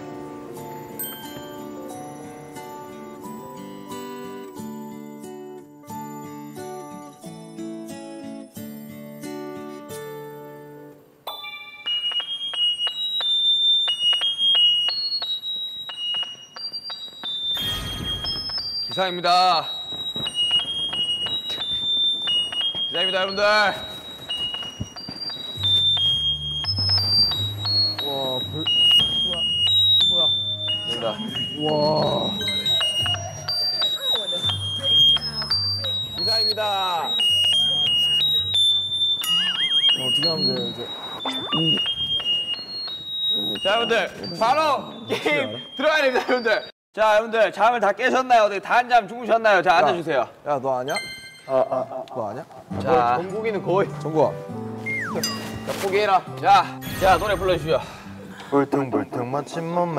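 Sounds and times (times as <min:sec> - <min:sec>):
electronic alarm beeping melody: 0:11.3 - 0:46.7, 0:50.9 - 0:51.6
short warbling tone: 0:39.2 - 0:42.4.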